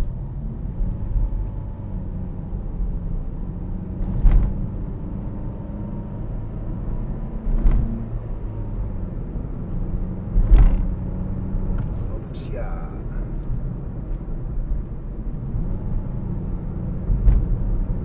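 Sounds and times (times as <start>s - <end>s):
road and engine rumble: 0.0s - 18.0s.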